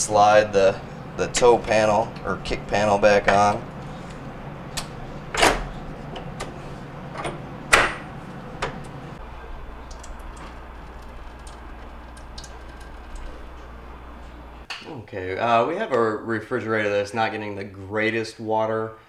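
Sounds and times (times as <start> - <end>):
refrigerator low hum: 0.0 - 15.8
water running into plastic pitcher: 9.3 - 13.8.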